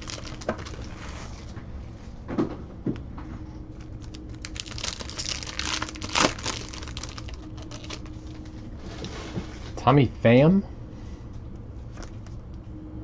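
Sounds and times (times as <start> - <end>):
plastic wrapping crinkling: 0.0 - 1.5, 3.7 - 8.6.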